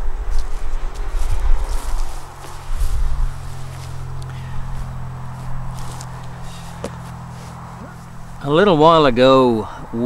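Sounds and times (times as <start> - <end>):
low fluctuating rumble: 0.0 - 9.0
footsteps in grass: 0.2 - 8.6.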